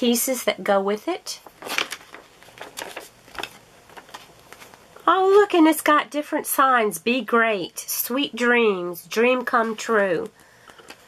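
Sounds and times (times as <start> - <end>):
paper page rustling: 1.4 - 5.4.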